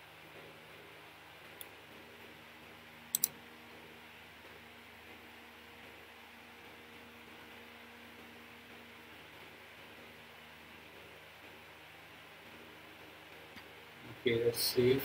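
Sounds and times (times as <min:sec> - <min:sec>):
faint hiss and low hum: 0:00.0 - 0:15.0
sharp computer clicks: 0:03.1 - 0:03.4.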